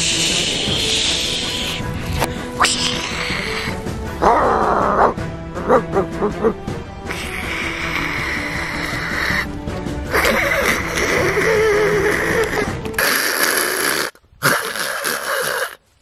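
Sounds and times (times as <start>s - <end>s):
man making breathy hissing sounds: 0.0s - 4.0s, 7.1s - 15.8s
background music: 0.0s - 15.5s.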